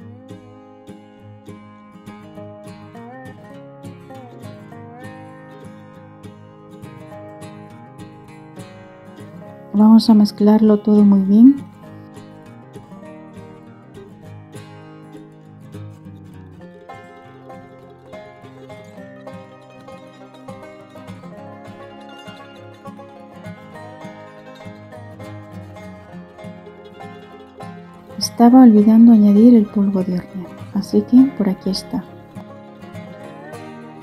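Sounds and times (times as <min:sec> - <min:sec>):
soft instrumental music with plucked strings: 0:00.0 - 0:34.0.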